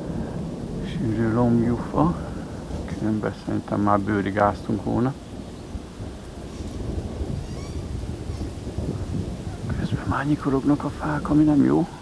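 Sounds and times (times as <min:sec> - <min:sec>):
rain: 0:00.0 - 0:12.0
thunder rumbling: 0:00.0 - 0:12.0.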